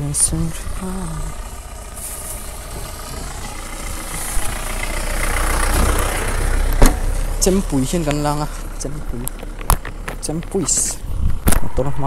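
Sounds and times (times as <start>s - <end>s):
pickup truck passing: 0.0s - 12.0s
sharp thump: 6.8s - 7.1s.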